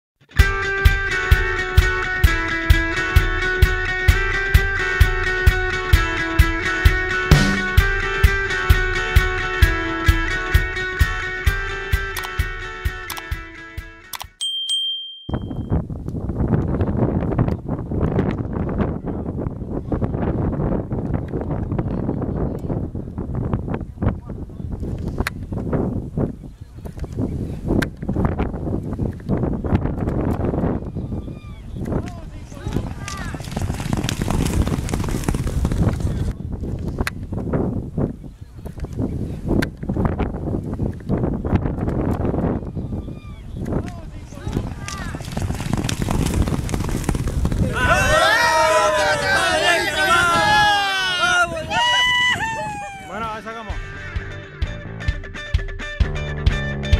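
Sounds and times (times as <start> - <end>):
bell-like ding: 14.4 - 15.8
wind buffeting microphone: 15.7 - 53.5
galloping horses thudding: 32.6 - 36.3, 44.4 - 47.9.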